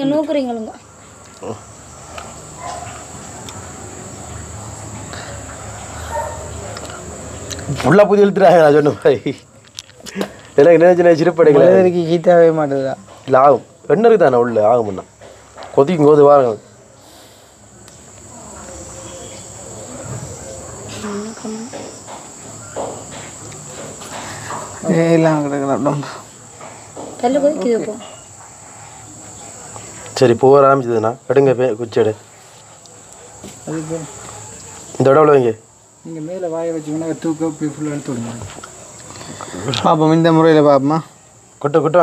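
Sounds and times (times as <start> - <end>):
crickets trilling: 0.0 - 42.0
low murmur of voices: 16.6 - 24.8.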